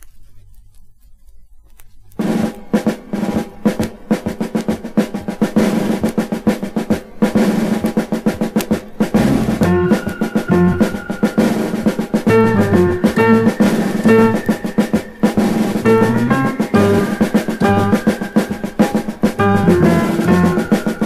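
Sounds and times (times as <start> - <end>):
stepped bass notes: 2.2 - 14.6, 15.3 - 21.0
higher melody: 2.2 - 21.0
snare drum roll: 2.2 - 21.0.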